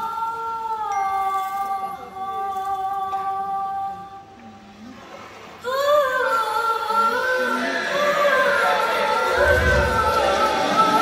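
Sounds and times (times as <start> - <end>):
woman singing long wordless note: 0.0 - 4.4
soundtrack music: 9.2 - 11.0.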